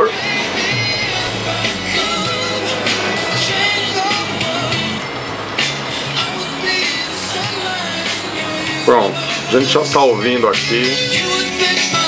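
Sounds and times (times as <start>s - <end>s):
music from cassette deck: 0.0s - 12.0s.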